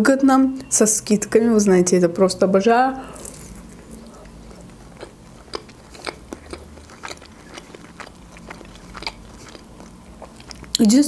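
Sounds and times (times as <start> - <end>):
biting and chewing crisp pastry: 3.1 - 11.0.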